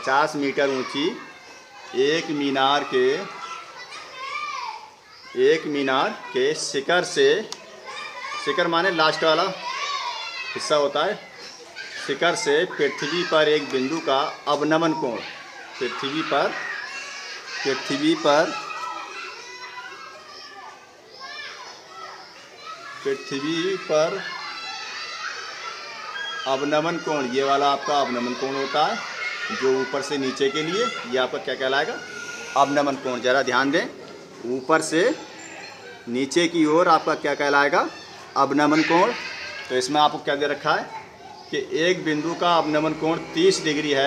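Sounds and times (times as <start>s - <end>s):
children's voices: 0.0s - 44.0s
child's high voice: 3.3s - 5.4s, 16.5s - 23.0s.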